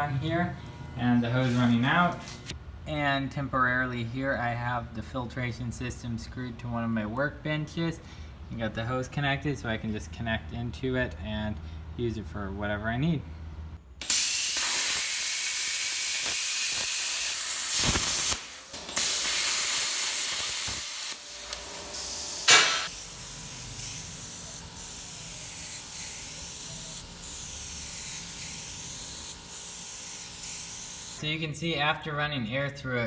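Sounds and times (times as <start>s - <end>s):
plasma cutter torch hissing: 14.0s - 31.2s.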